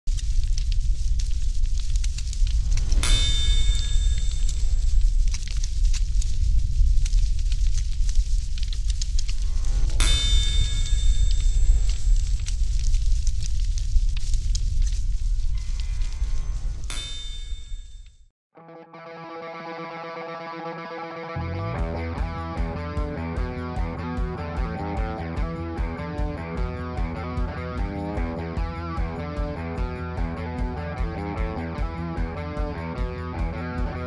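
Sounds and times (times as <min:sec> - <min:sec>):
forge fire rumbling and crackling: 0:00.1 - 0:18.1.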